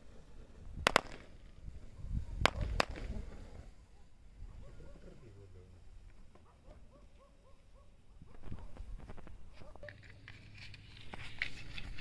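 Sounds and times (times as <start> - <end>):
firework cracking pops: 0.8 - 1.6, 2.4 - 3.6.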